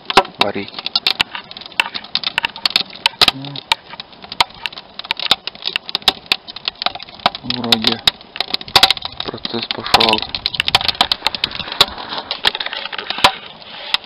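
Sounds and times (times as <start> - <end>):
wood fire crackling: 0.0 - 14.0.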